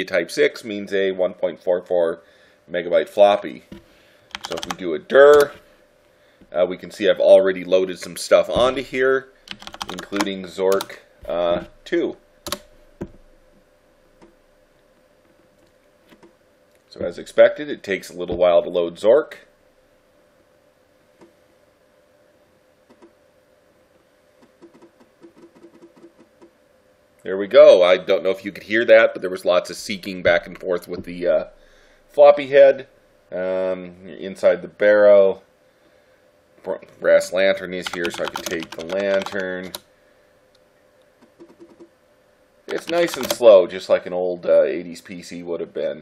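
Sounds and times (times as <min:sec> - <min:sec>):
faint steady hum: 0:00.0 - 0:46.0
floppy drive head clicking: 0:42.7 - 0:43.4.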